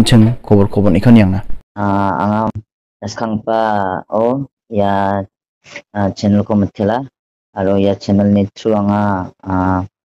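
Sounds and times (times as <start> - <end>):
person speaking drawn-out syllables: 1.8 - 2.6.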